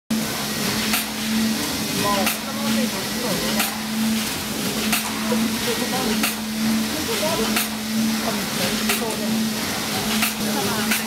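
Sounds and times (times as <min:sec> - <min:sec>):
packing machine humming and hissing: 0:00.1 - 0:11.0.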